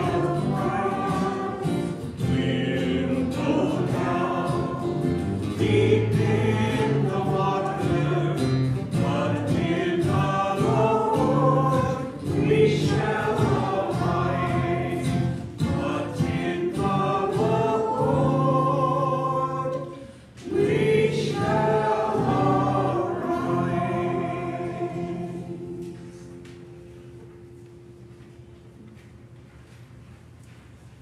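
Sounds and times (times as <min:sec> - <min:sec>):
voices singing a hymn: 0:00.0 - 0:26.9.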